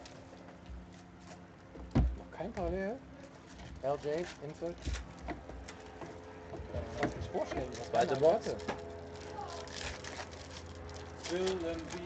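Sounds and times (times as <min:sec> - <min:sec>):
low steady hum: 0:00.0 - 0:12.0
card wrappers rustling: 0:07.7 - 0:12.0.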